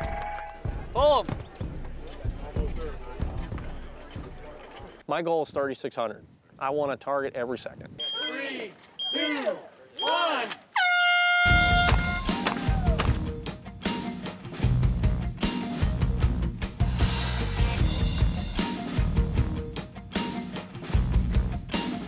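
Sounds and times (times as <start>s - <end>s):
person counting down: 8.0s - 10.6s
horn note: 10.8s - 12.4s
music with heavy drum beat: 11.5s - 22.0s.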